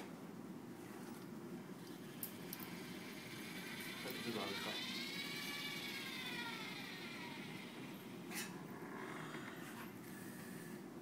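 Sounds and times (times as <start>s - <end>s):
robot arm servo motors whining: 2.2s - 10.7s.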